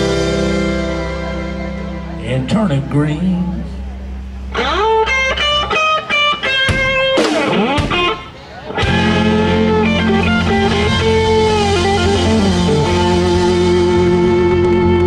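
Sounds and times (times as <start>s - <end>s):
electric guitar lead: 0.0s - 15.0s
live country band playing: 0.0s - 15.0s.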